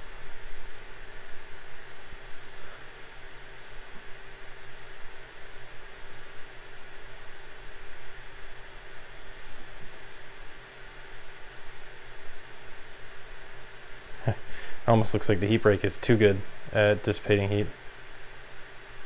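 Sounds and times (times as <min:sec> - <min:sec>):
cooling fans whirring: 0:00.0 - 0:19.0.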